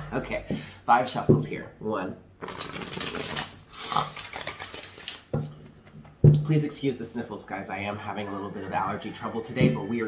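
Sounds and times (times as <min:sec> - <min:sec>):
cards shuffling: 0:02.4 - 0:05.4.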